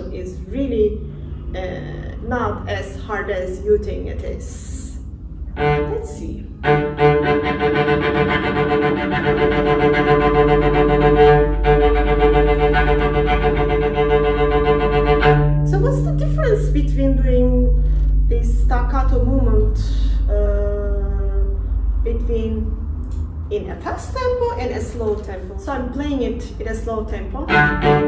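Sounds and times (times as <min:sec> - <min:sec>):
cello staccato bowing: 0:05.6 - 0:16.7, 0:27.5 - 0:28.0.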